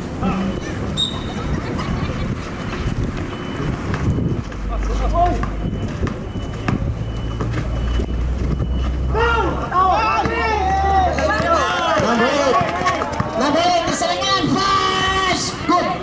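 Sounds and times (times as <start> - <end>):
players calling out: 0.2 - 16.0
shoes on court: 2.4 - 9.0, 11.0 - 15.5
basketball bouncing on concrete: 3.8 - 7.7, 11.2 - 14.0.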